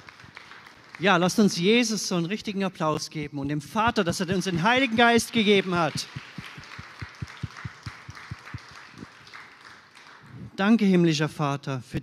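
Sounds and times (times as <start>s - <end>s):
congregation applauding: 0.0s - 1.8s, 4.2s - 10.5s
steady single claps: 4.3s - 10.3s.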